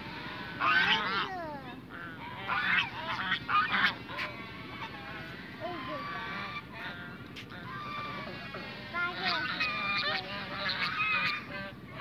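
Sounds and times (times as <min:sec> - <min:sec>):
geese honking: 0:00.0 - 0:12.0.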